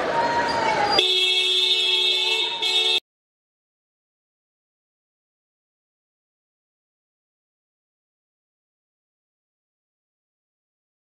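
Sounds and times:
vehicle horn blast: 1.0 - 3.0.

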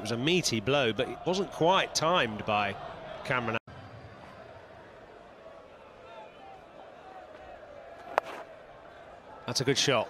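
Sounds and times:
crowd murmur in stands: 2.3 - 10.0.

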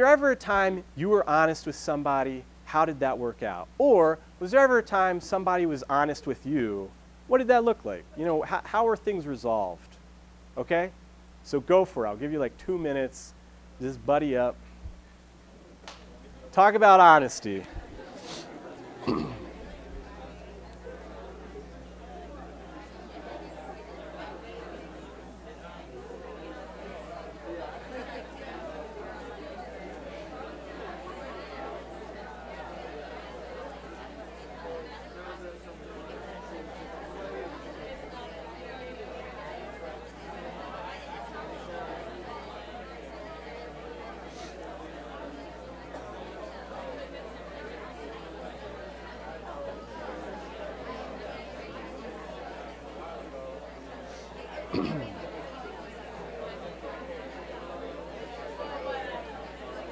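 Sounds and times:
babble of overlapping conversations: 0.0 - 59.9.

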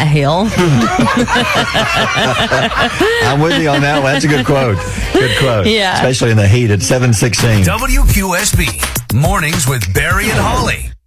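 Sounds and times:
people laughing: 0.4 - 6.0.

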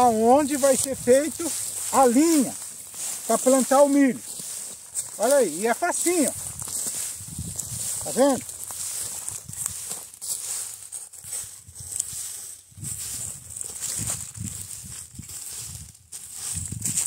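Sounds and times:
hook scraping dry grass: 0.0 - 17.0.

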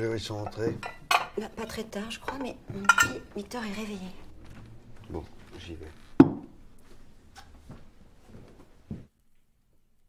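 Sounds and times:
tableware set down on table: 6.2 - 6.5.

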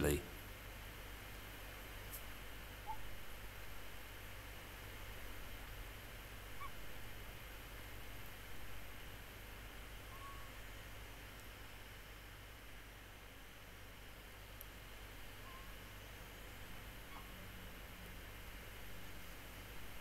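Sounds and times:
steady low hiss: 0.0 - 20.0
faint whistled bird call: 2.8 - 3.1, 6.6 - 6.8, 10.1 - 10.6, 15.4 - 15.9, 17.0 - 17.5.

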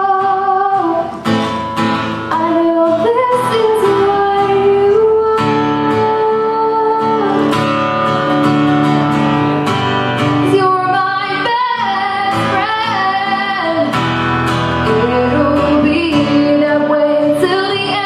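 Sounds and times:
woman singing: 0.0 - 1.3, 2.2 - 7.8, 10.4 - 14.0, 14.8 - 18.0
strummed acoustic guitar: 0.0 - 18.0.

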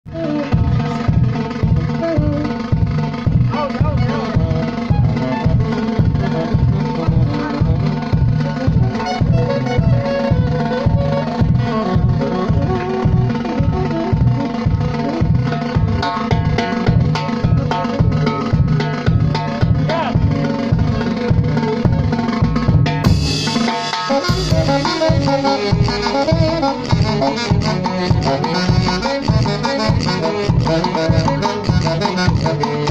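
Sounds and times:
saxophones playing melody: 0.1 - 22.4, 23.0 - 32.9
bass drum beat: 0.1 - 32.9.

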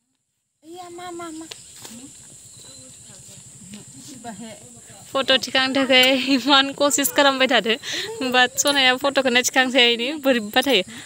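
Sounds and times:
high-pitched hiss: 0.6 - 11.0.

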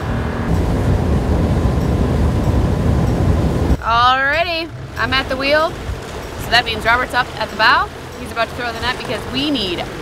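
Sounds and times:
outboard motor running: 0.0 - 10.0
water noise: 0.0 - 10.0
wind: 0.0 - 10.0.

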